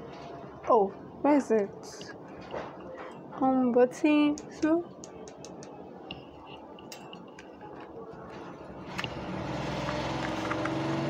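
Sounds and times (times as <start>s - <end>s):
clicks and taps of handling: 4.3s - 8.0s
generator humming: 7.6s - 11.0s.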